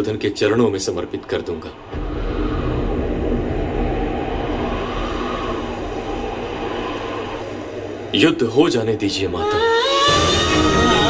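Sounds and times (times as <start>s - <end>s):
deep rumbling sound effect: 1.7s - 9.4s.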